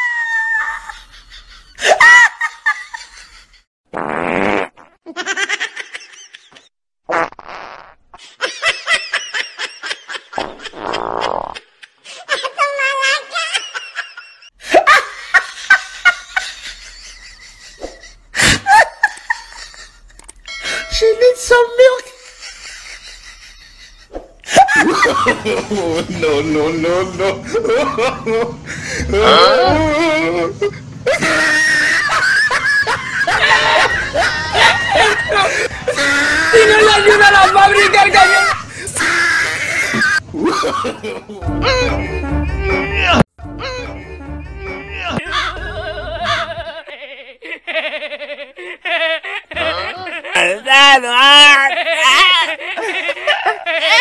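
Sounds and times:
high-pitched screaming cry: 0.0 - 1.0
fart noises: 3.9 - 5.0, 7.1 - 8.1, 10.4 - 11.6
bursts of laughter: 22.2 - 43.2, 44.9 - 50.4, 51.4 - 54.0.

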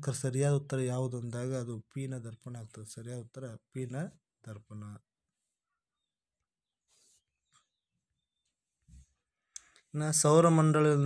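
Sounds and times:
man speaking: 0.0 - 5.1, 9.9 - 11.0.

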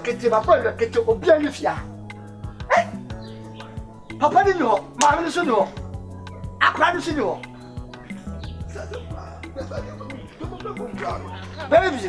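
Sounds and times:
man talking: 0.0 - 1.9, 4.2 - 5.8, 6.6 - 7.5, 8.7 - 12.0
background music with beat: 0.0 - 12.0
sharp bark-like cry: 2.6 - 3.8, 7.4 - 10.2.

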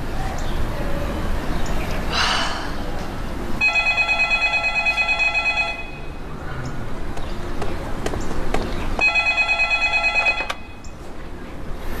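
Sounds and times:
electronic telephone ringing: 3.6 - 6.1, 9.0 - 10.8.

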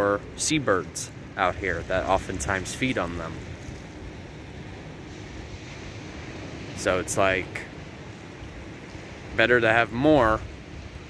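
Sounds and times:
wind blowing across microphone: 0.0 - 11.0.

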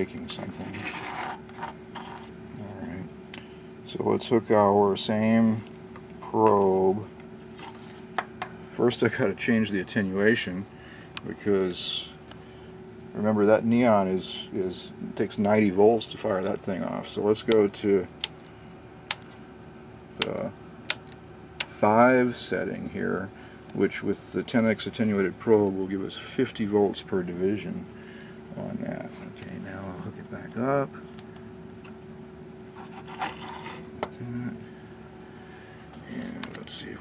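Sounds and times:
faint steady hum: 0.0 - 37.0
scraping and rubbing handling noise: 0.1 - 3.2, 7.4 - 8.2, 32.7 - 34.2
rotary switch clicks: 20.2 - 21.8.

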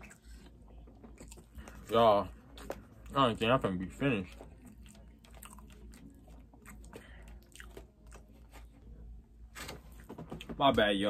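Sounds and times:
chewing soft food: 0.0 - 8.8.

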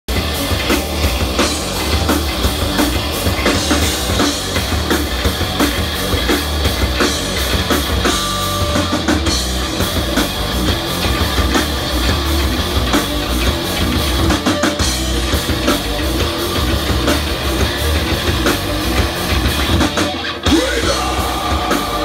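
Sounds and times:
drum kit: 0.0 - 22.0
electric guitars: 0.1 - 22.0.

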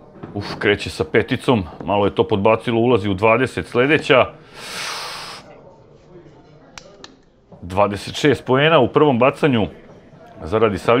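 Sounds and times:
short breathy hiss: 4.4 - 5.5.

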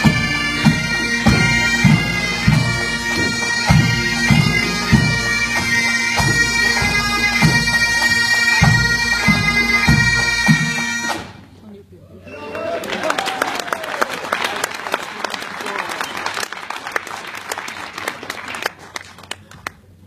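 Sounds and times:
bagpipes playing: 0.0 - 11.3
drum beats: 0.0 - 11.4.

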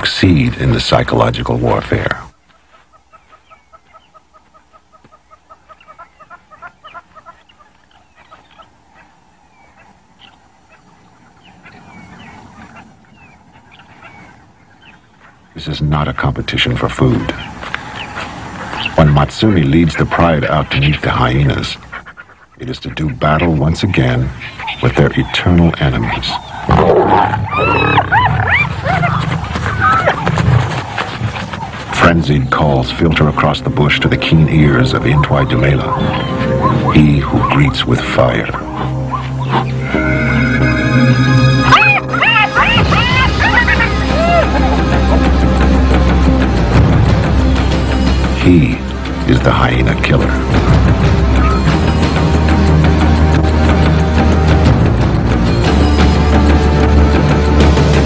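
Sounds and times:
hyenas giggling: 20.1 - 31.9, 34.6 - 46.3, 50.6 - 52.0.

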